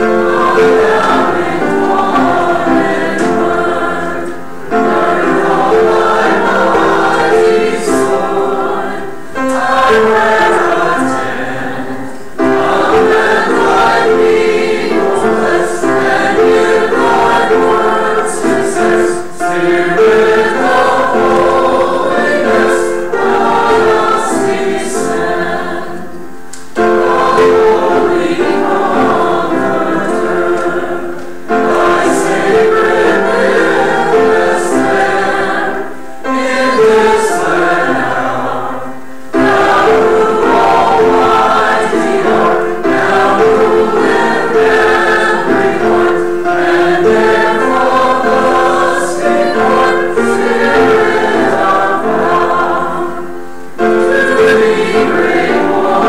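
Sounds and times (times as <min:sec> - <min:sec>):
choir and congregation singing hymn: 0:00.0 - 0:56.0.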